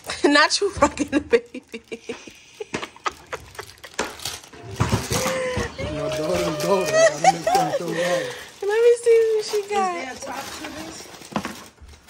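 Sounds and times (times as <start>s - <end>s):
wrapping paper tearing and crinkling: 1.3s - 12.0s.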